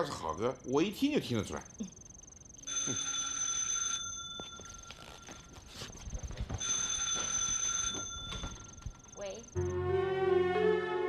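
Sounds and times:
telephone bell ringing: 2.6s - 6.0s, 6.6s - 9.6s.

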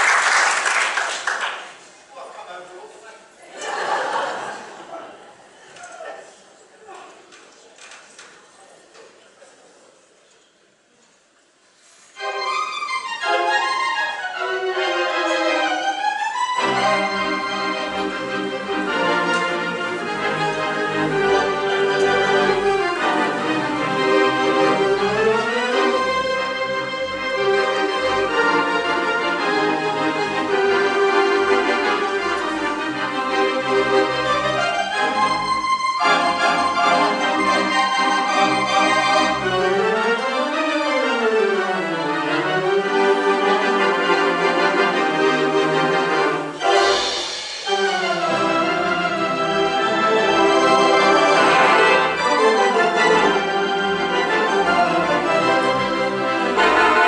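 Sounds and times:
electronic organ playing: 16.6s - 57.0s.

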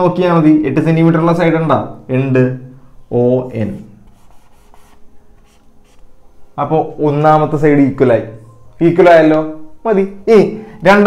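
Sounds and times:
marker writing on whiteboard: 3.6s - 6.2s.

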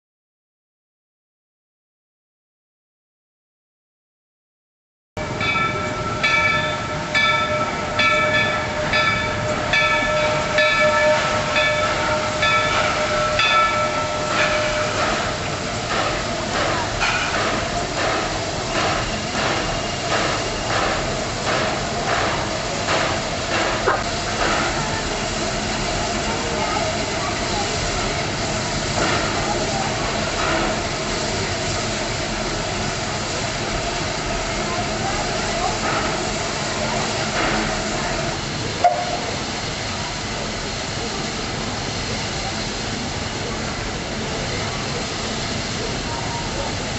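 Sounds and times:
bell ringing: 5.2s - 15.3s
rolling train wheels: 5.2s - 46.9s
steam locomotive running: 5.2s - 46.9s
steam hissing: 5.3s - 46.9s.

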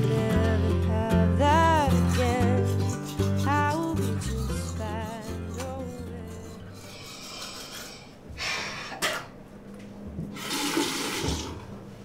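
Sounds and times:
sink tap water hissing: 10.3s - 11.6s.

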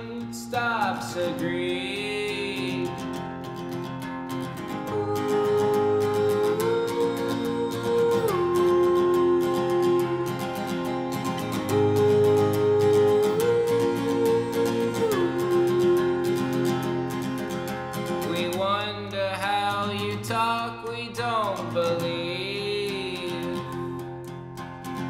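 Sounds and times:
acoustic guitar strumming: 0.0s - 25.0s.

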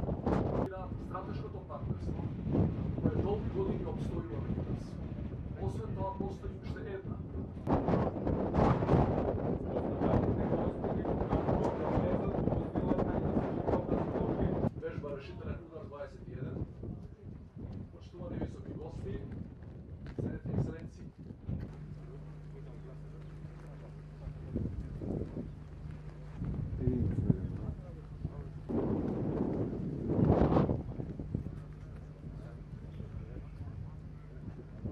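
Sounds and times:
wind gusting across microphone: 0.0s - 34.9s.

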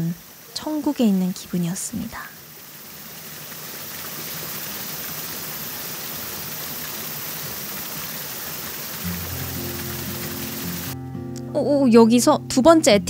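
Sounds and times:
water rushing over rocks: 2.4s - 11.0s
background music chords: 9.0s - 13.0s.

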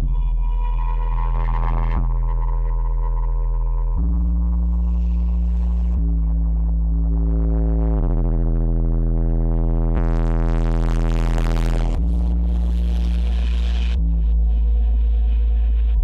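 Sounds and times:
droning electronic music: 0.0s - 16.0s.

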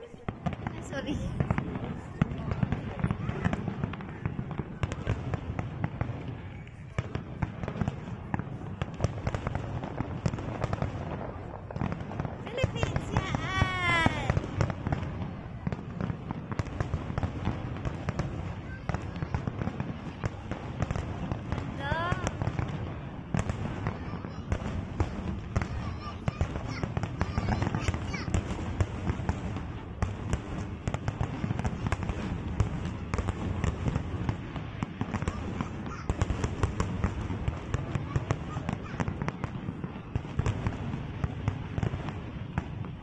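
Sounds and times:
fireworks bangs and crackles: 0.0s - 43.0s.

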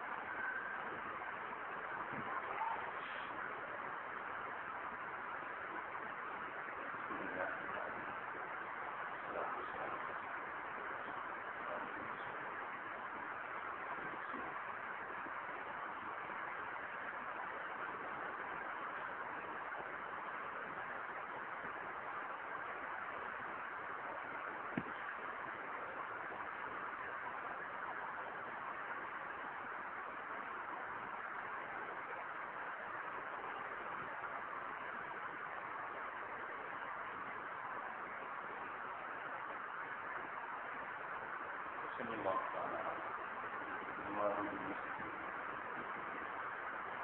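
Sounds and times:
recording hiss: 0.0s - 47.0s.

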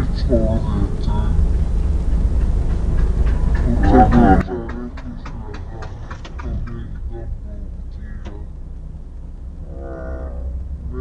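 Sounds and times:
car engine and tyres droning: 0.0s - 11.0s.

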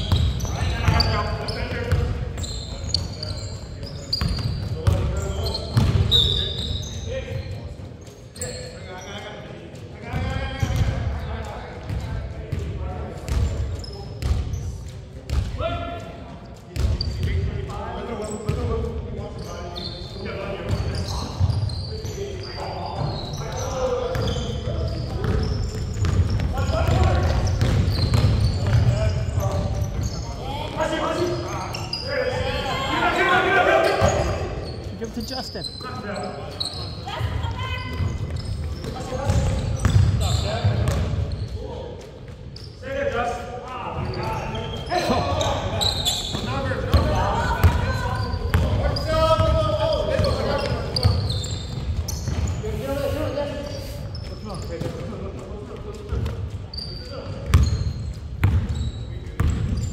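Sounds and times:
basketball bouncing on hardwood: 5.8s - 6.1s, 25.2s - 29.6s.

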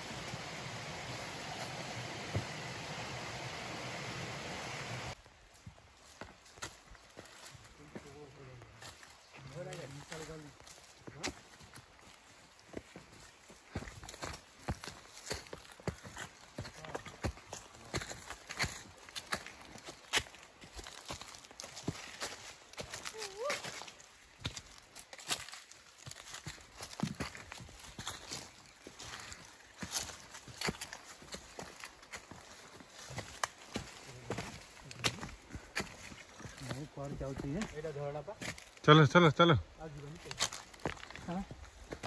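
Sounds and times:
footsteps crunching on leaves: 0.0s - 3.3s, 5.1s - 38.9s, 39.7s - 42.0s.

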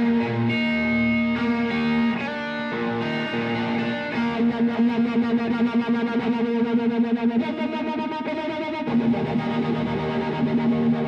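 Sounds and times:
distorted electric guitar pulsing: 0.0s - 11.0s.

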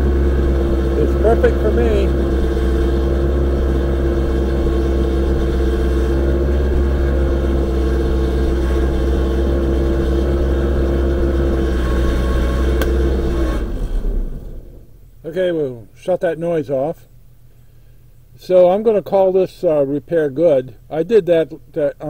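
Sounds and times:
boom lift engine running: 0.0s - 14.9s
steady whine: 0.0s - 22.0s.

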